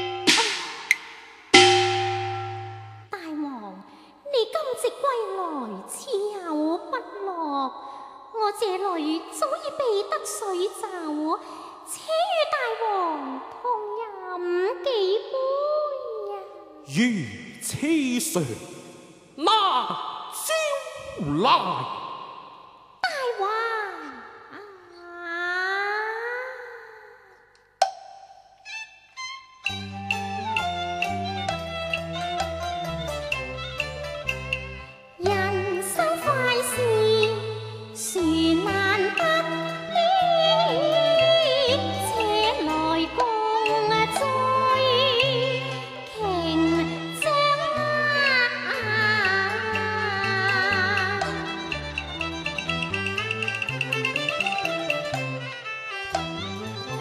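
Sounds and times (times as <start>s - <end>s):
musical accompaniment: 0.0s - 3.1s, 28.7s - 57.0s
sharp percussion strike: 0.0s - 3.1s
woman's long stylised opera call: 39.9s - 42.7s.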